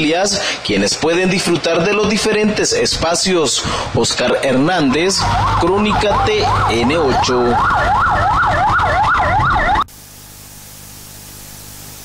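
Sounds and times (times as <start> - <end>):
police siren fast yelp: 5.2 - 9.9
faint steady hiss: 9.9 - 12.0.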